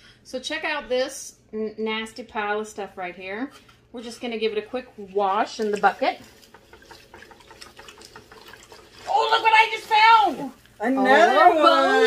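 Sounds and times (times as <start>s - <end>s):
water sloshing in a bucket: 5.0s - 10.8s.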